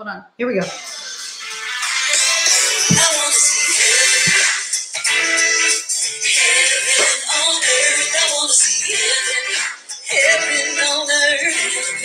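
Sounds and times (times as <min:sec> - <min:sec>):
worship song through a speaker: 0:00.6 - 0:12.0.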